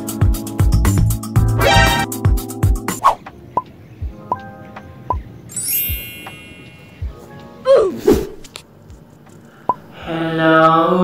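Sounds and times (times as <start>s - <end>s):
faint music: 3.2s - 11.0s.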